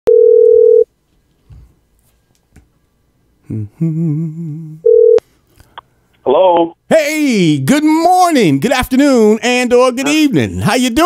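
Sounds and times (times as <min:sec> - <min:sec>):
telephone line beep: 0:00.1 - 0:00.8, 0:04.8 - 0:05.2.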